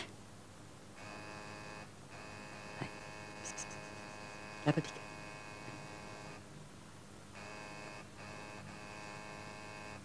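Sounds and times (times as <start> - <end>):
low mains hum: 0.0 - 10.0
electrical buzz: 1.0 - 6.5, 7.3 - 10.0.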